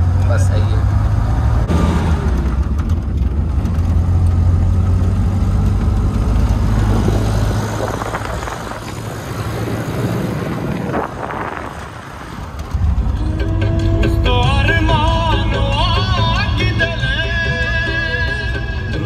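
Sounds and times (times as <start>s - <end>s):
wind and tyre noise: 0.0s - 17.2s
engine and road rumble: 0.0s - 19.0s.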